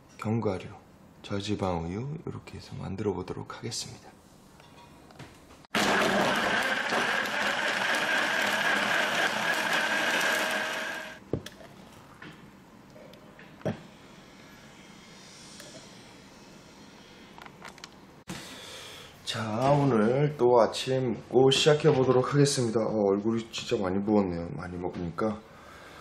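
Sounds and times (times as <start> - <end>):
blender running: 5.7 - 11.2.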